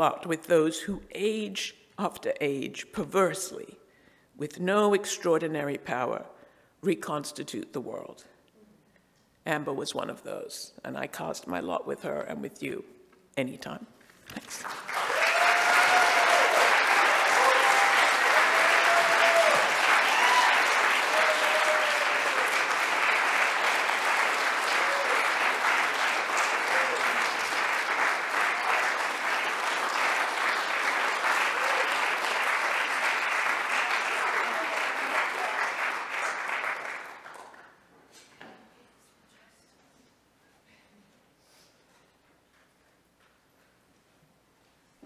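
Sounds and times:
audience applauding: 14.4s - 37.7s.

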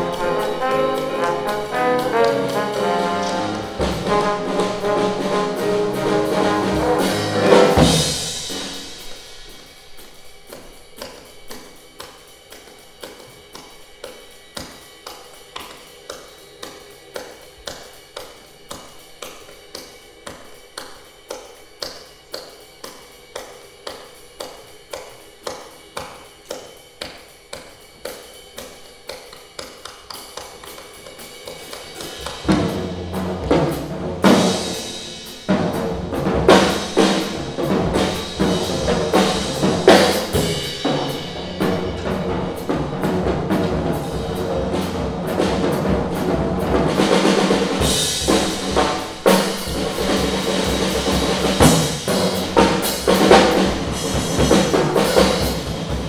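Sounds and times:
jazz band playing swing: 0.0s - 13.9s, 29.6s - 56.0s
rhythmic hand claps: 0.0s - 32.9s, 47.0s - 56.0s.

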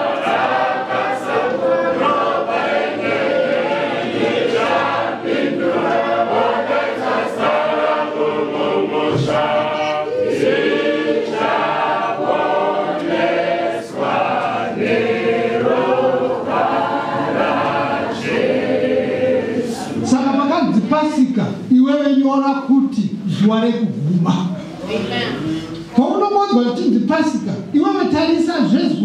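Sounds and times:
congregation singing a hymn: 0.0s - 21.2s.

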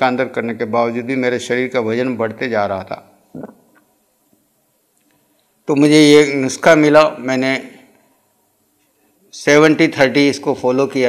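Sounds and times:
man talking: 0.0s - 3.2s, 5.6s - 7.9s, 9.3s - 11.0s
soft throat sound: 3.3s - 3.9s.

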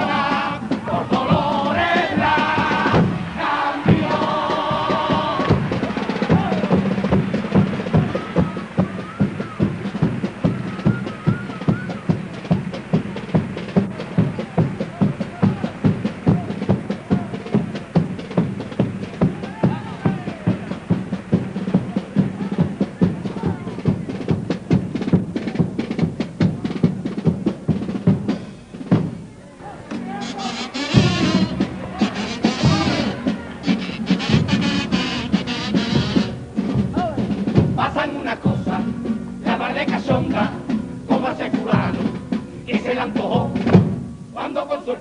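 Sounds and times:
bass drum and snare beat: 0.0s - 29.3s, 29.9s - 44.2s
wavering kazoo line: 30.2s - 36.4s.

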